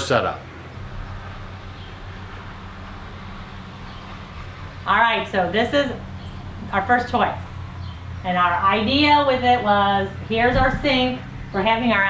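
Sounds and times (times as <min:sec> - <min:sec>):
low drone hum: 0:00.0 - 0:12.0.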